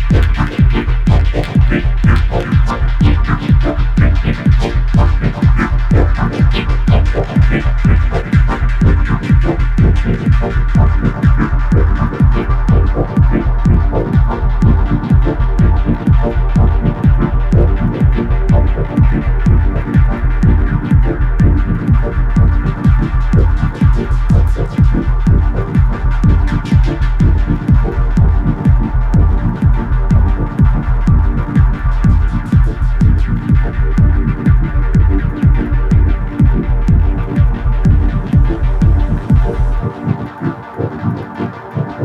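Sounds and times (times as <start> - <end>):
techno music with deep bass: 0.0 - 42.0.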